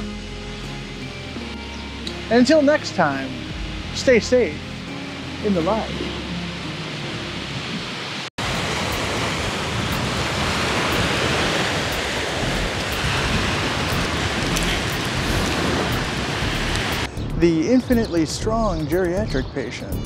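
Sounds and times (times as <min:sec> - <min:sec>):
waves breaking on beach: 0:05.4 - 0:17.1
wind rushing: 0:05.8 - 0:18.4.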